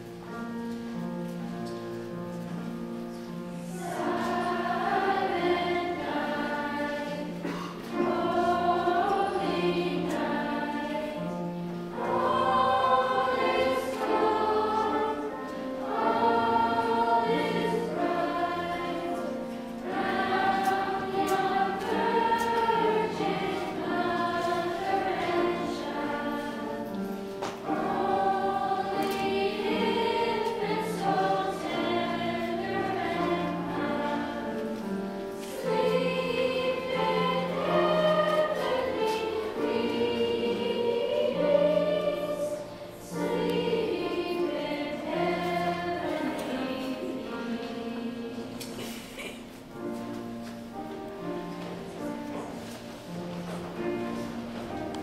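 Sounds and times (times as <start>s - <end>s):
choir singing in parts: 0.2s - 55.0s.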